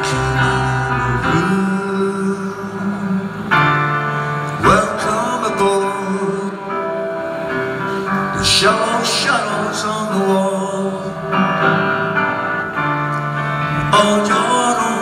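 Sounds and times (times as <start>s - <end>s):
live band playing slow song: 0.0s - 15.0s.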